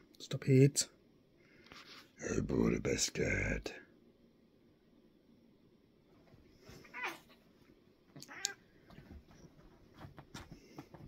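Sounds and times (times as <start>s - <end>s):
cat calling out: 8.2s - 8.6s.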